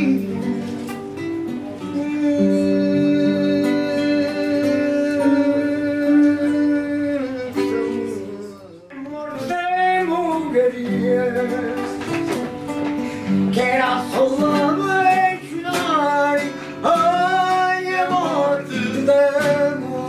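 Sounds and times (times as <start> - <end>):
acoustic guitars: 0.0 - 20.0
man singing: 0.0 - 20.0.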